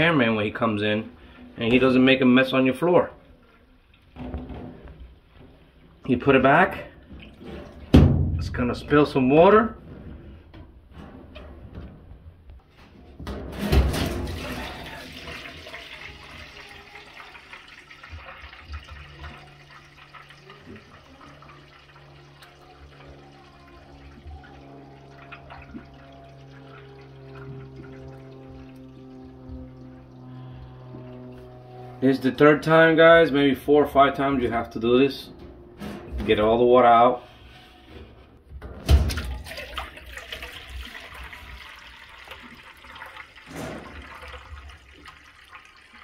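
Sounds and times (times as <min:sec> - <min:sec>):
water gushing from drain hose: 0:13.6 - 0:32.1, 0:39.0 - 0:46.0
steady pouring stream: 0:13.9 - 0:31.9, 0:39.1 - 0:46.0.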